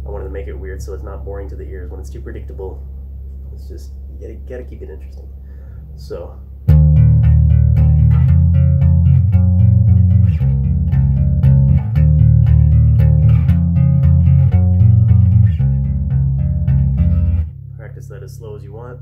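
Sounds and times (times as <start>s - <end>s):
bass guitar plucking: 0.0s - 19.0s
low steady hum: 0.0s - 19.0s.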